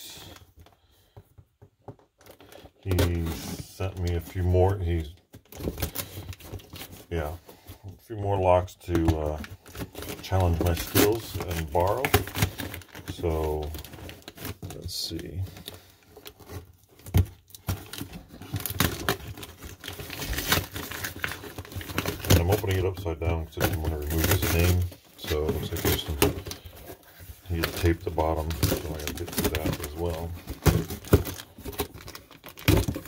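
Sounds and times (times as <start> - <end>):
cardboard flaps rustling: 0.4 - 33.0.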